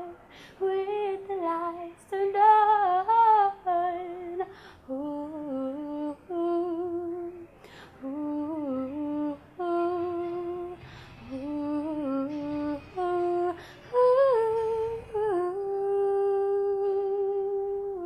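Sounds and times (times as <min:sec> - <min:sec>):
woman singing unaccompanied: 0:00.0 - 0:18.0.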